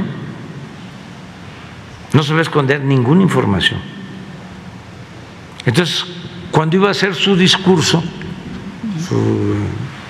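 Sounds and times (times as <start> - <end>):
room background hiss: 0.0 - 10.0
man saying eh: 8.8 - 10.0.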